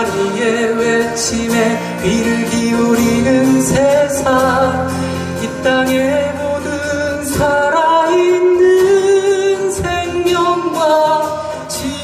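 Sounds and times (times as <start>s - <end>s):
acoustic guitar strumming: 0.0s - 12.0s
man singing folk melody: 0.0s - 12.0s.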